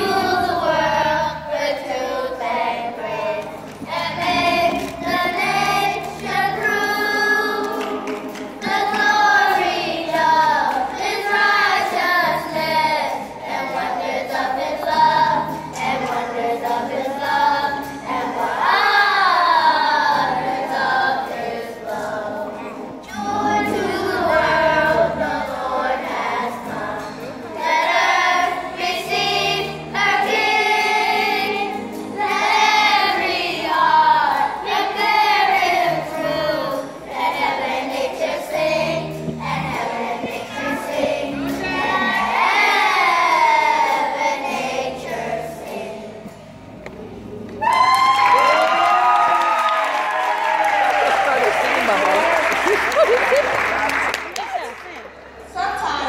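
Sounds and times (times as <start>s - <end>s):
children's choir singing: 0.0s - 46.8s.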